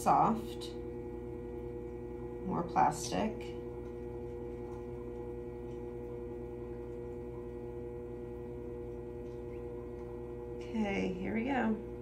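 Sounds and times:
pottery wheel motor humming: 0.0s - 12.0s.

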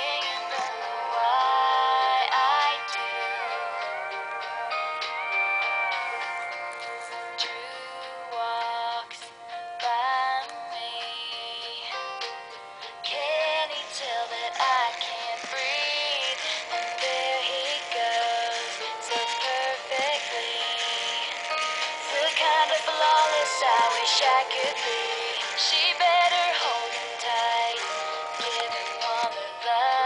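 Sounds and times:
pop song through small speaker: 0.0s - 30.0s.

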